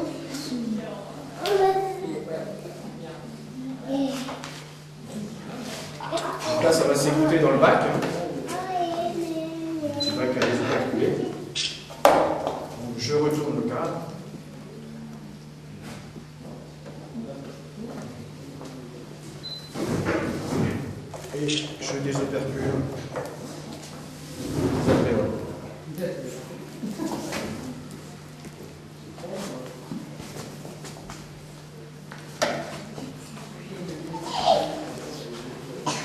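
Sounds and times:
faint murmur of voices: 0.0s - 11.6s, 12.6s - 36.0s
steady low hum: 0.0s - 36.0s.

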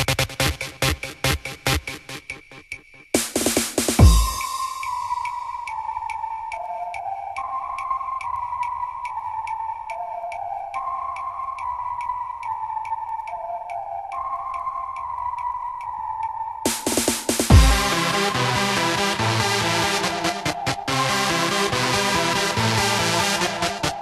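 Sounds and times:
crash cymbal hit: 4.0s - 5.5s
synth riff: 16.7s - 24.0s.

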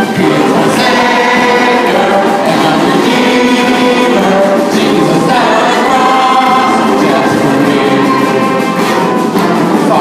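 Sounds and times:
group singing worship song: 0.0s - 10.0s
live band playing: 0.0s - 10.0s.

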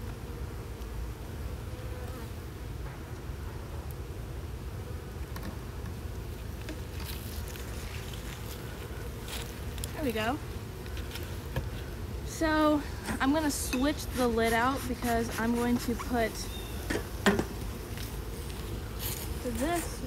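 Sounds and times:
honeybees buzzing: 0.0s - 20.0s.

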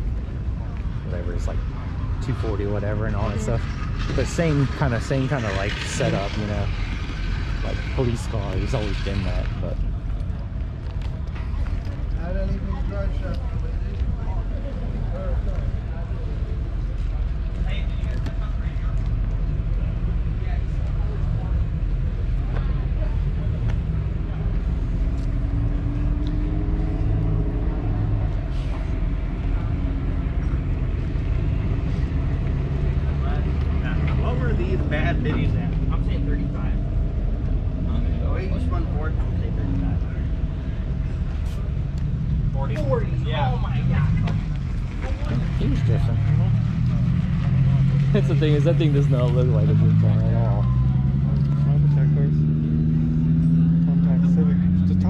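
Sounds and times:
steady low rumble: 0.0s - 55.0s
voices: 0.0s - 55.0s
car engine revving: 1.1s - 10.1s, 21.0s - 55.0s.

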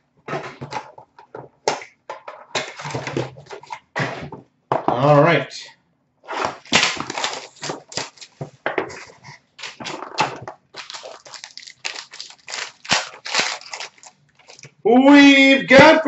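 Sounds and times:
cards and packaging handled: 6.4s - 14.8s
wrapper crinkling and tearing: 6.5s - 8.4s, 9.6s - 14.8s.

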